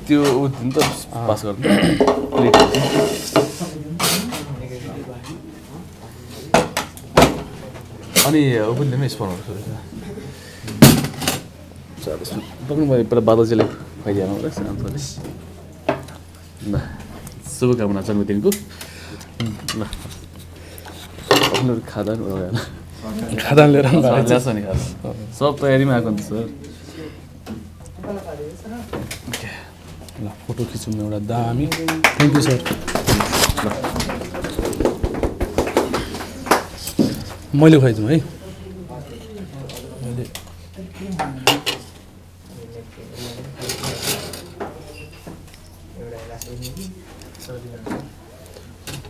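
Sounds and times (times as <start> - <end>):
cutlery and plates clinking: 2.0 - 4.5.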